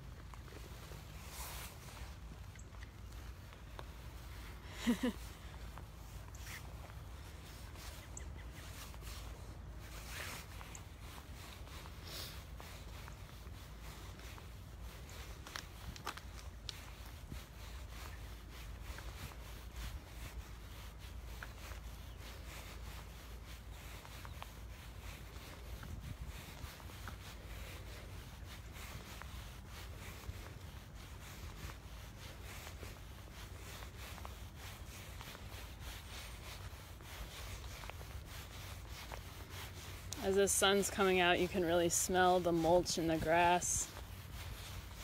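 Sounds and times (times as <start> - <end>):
footsteps outdoors: 0.0 - 45.0
rubbing and handling rustle: 0.1 - 45.0.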